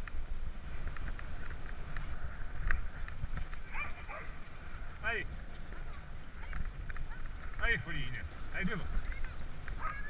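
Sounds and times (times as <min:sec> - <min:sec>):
low rumble of riding on gravel: 0:00.0 - 0:10.0.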